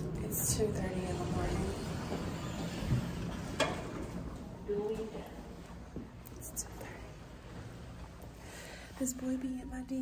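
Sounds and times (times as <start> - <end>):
elevator low rumble: 0.0 - 10.0.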